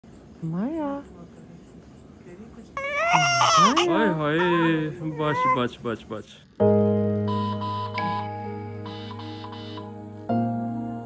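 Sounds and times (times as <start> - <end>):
newborn baby crying: 2.8 - 5.8
adult talking: 3.0 - 6.5.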